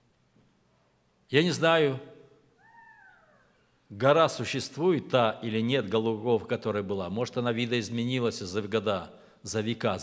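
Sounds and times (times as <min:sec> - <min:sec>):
high-pitched meow-like cry: 0:02.6 - 0:03.6.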